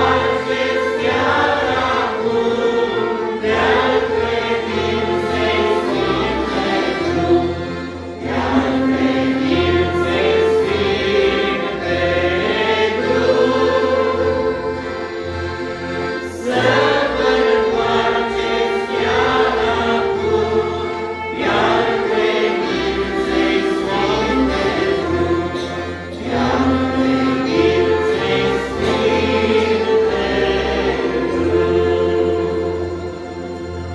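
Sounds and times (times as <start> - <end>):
men singing a hymn: 0.0 - 33.1
small band playing: 0.0 - 33.7.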